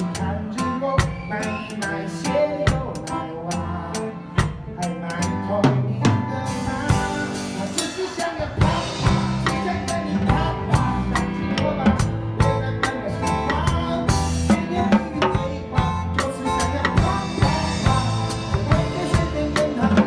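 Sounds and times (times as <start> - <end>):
recorded backing song: 0.0 - 20.0
rock drum kit playing: 0.0 - 20.0.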